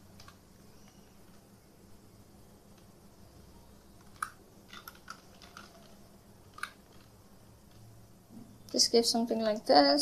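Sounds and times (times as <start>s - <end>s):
computer keyboard keystrokes: 0.1s - 1.4s, 4.0s - 7.1s.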